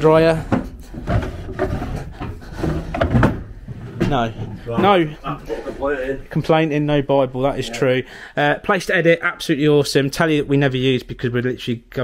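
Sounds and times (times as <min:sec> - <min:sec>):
wooden drawer sliding open: 0:00.6 - 0:04.7.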